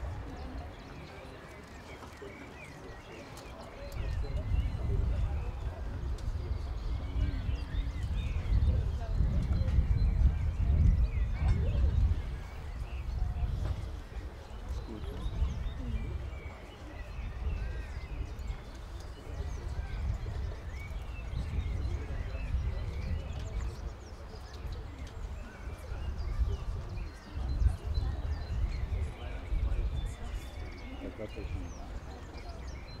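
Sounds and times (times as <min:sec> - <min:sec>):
faint voices: 0:00.0 - 0:33.0.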